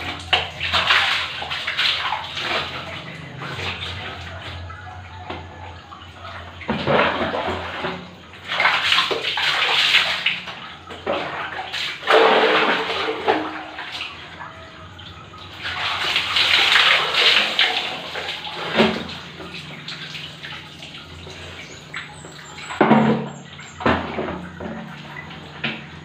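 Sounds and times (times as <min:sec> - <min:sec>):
water splashing onto floor: 0:06.8 - 0:14.2.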